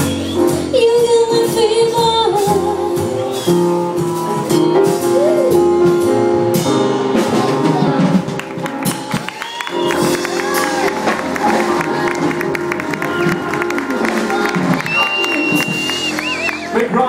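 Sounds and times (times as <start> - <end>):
high whistle: 0.0 - 0.7, 9.3 - 10.3, 14.7 - 16.8
jazz band playing: 0.0 - 17.0
audience applauding and cheering: 8.0 - 17.0.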